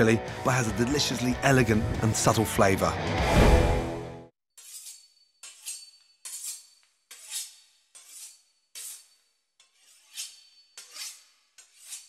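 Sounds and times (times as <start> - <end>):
knife sawing through pastry crust: 4.6 - 12.0.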